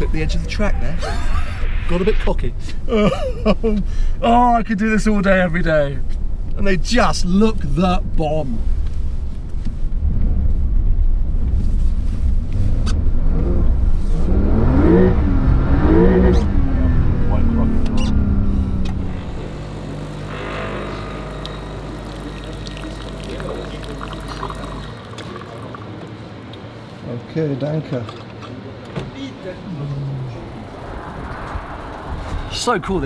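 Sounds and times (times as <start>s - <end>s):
car engine rumble: 0.0s - 25.1s, 28.7s - 33.0s
steady engine hum: 0.0s - 27.6s, 28.6s - 33.0s.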